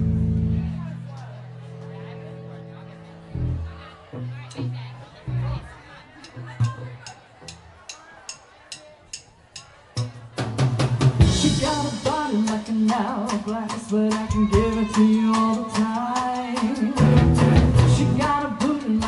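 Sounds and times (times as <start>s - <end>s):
rock band playing loud: 0.0s - 2.7s, 10.4s - 19.0s
sustained keyboard and bass notes: 0.0s - 7.9s, 11.2s - 19.0s.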